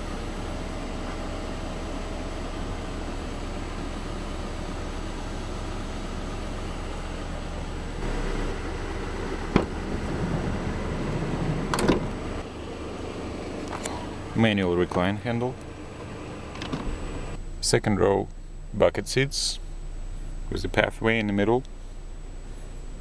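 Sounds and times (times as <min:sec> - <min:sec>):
low hum: 0:00.0 - 0:23.0
sliding door rolling: 0:09.4 - 0:12.4
door latching clunk: 0:09.5 - 0:09.8, 0:11.7 - 0:12.2, 0:16.5 - 0:17.0
sliding door click: 0:11.7 - 0:12.2.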